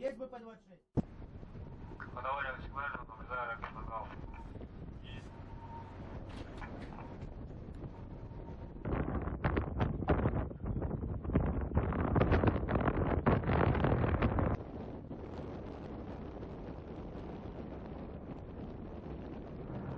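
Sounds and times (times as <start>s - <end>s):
wind on microphone: 1.0s - 19.9s.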